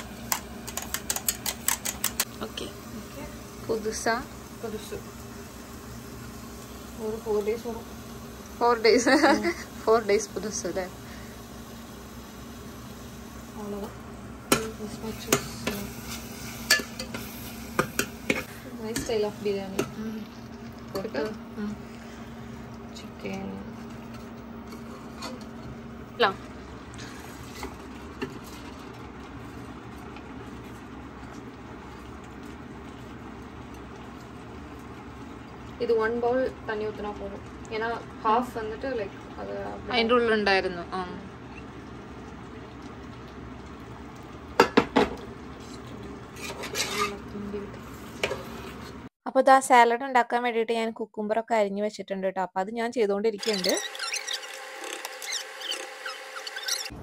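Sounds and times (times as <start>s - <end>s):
fan humming: 0.0s - 49.1s, 53.3s - 57.0s
utensil scraping ceramic bowl: 46.3s - 47.3s, 53.4s - 56.9s.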